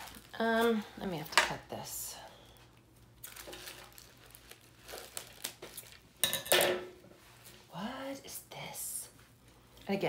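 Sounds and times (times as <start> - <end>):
wrapping paper crinkling: 0.0 - 0.9, 2.6 - 6.2.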